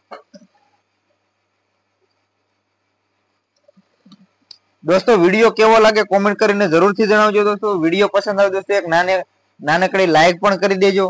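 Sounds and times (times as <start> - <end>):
man's voice: 4.9 - 11.0.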